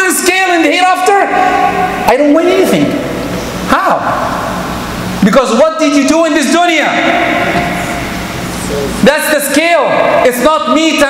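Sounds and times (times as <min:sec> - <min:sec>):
rushing hall background noise: 0:00.0 - 0:11.0.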